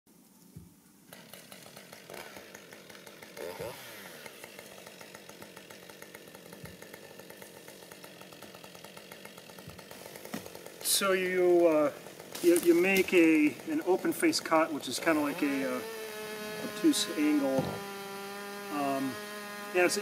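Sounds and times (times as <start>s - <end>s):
chainsaw cutting a tree trunk: 1.1s - 20.0s.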